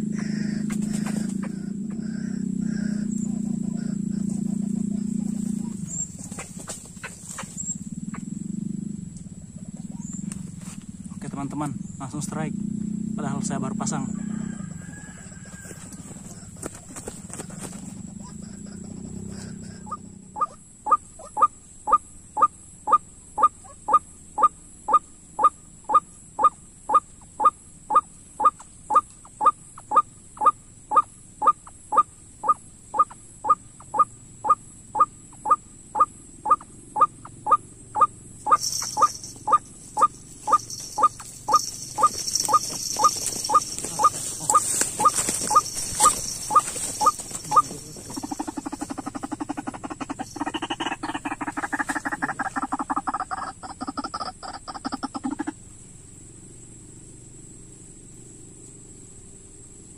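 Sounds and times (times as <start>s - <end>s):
waterhen calling: 25.4s - 55.6s.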